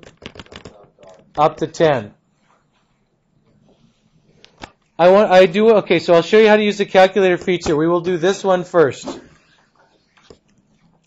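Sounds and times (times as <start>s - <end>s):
man speaking: 0.6s - 2.2s, 5.0s - 9.4s.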